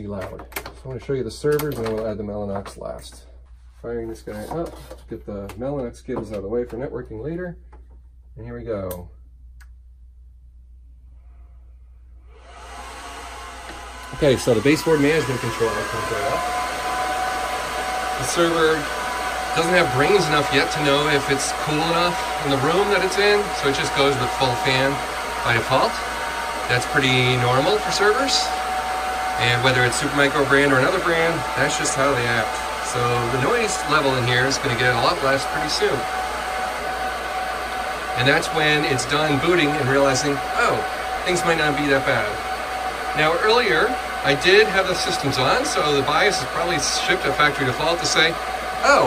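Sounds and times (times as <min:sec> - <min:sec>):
server cooling fans: 0:12.2 - 0:49.0.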